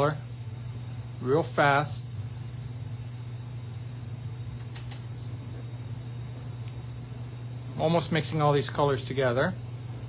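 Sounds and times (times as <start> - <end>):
low hum of machinery: 0.0 - 10.0.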